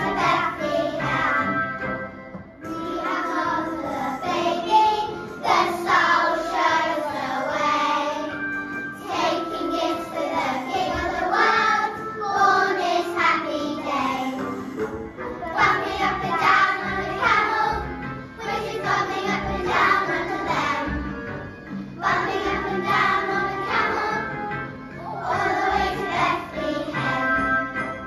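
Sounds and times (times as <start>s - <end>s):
children singing: 0.0s - 1.7s, 2.7s - 8.4s, 9.0s - 21.4s, 22.0s - 27.6s
musical accompaniment: 0.0s - 28.0s.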